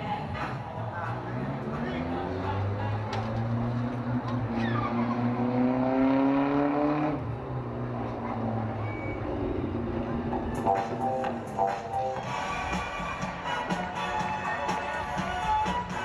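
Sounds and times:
vehicle engine revving: 0.4 - 10.5.

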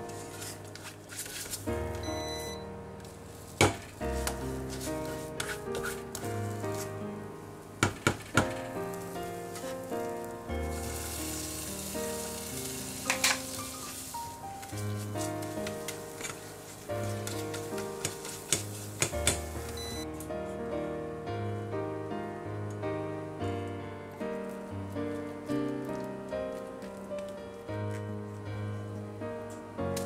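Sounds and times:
custard sizzling in pan: 8.6 - 19.8.

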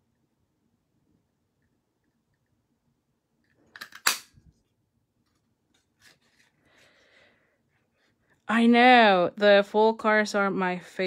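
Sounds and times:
paper handling: 5.2 - 6.9.

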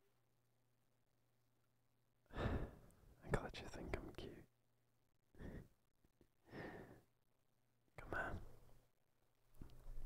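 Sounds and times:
man whispering: 3.2 - 4.6, 7.9 - 8.8.

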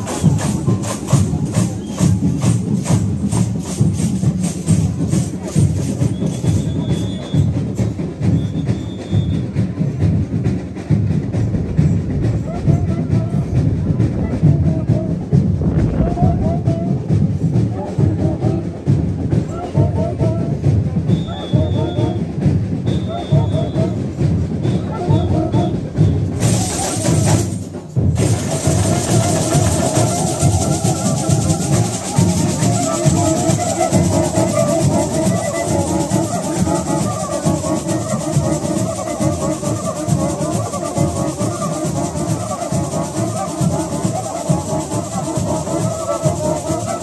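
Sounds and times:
samba percussion band: 0.0 - 47.0
deep bass drums beating: 9.5 - 19.5.

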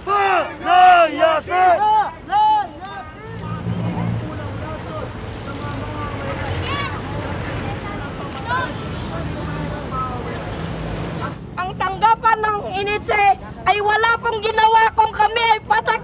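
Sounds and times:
faint crowd voices: 0.0 - 11.4
road traffic rumble: 0.0 - 16.0.

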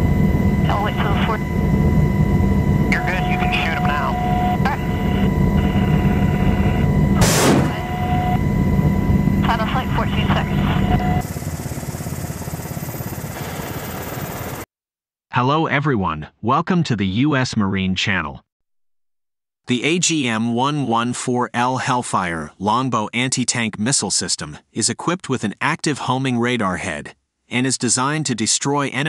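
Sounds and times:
helicopter cabin drone: 0.0 - 14.7
crew voices over intercom: 0.6 - 1.5, 2.9 - 6.8, 9.4 - 11.2
missile firing rush: 7.2 - 8.4.

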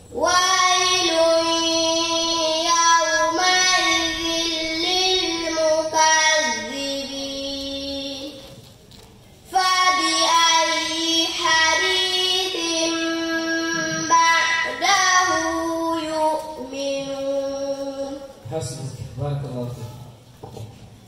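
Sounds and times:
girl chanting melodically: 0.0 - 8.6, 9.5 - 18.4.

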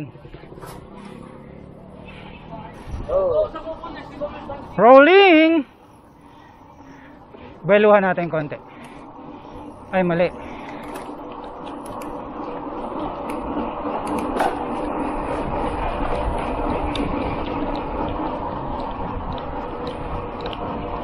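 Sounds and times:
bicycle tyres rolling on asphalt: 0.0 - 21.0
wind rushing over microphone: 2.4 - 4.8.

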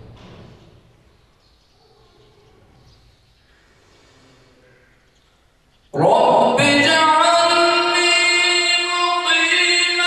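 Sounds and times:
faint room noise: 0.0 - 9.4
echo of amplified recitation: 5.8 - 10.0.

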